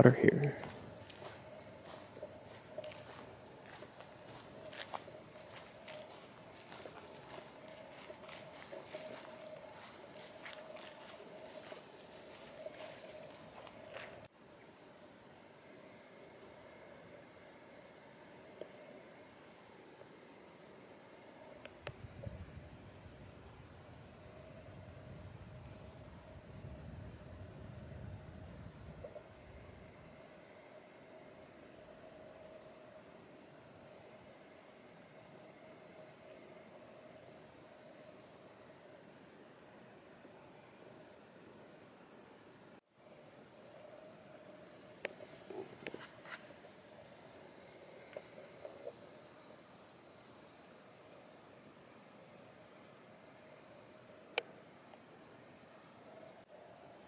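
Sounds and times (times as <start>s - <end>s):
insect chirping: 0.0s - 57.0s
insects buzzing: 0.0s - 57.0s.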